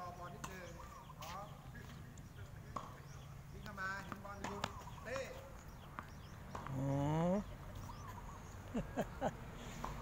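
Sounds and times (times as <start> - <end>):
tennis ball bouncing on court: 2.7 - 6.9, 9.8 - 10.0
racket hitting tennis ball: 4.0 - 5.4.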